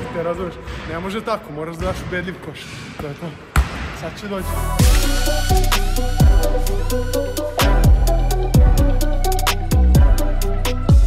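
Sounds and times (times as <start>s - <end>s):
background music with steady beat: 4.5s - 11.0s.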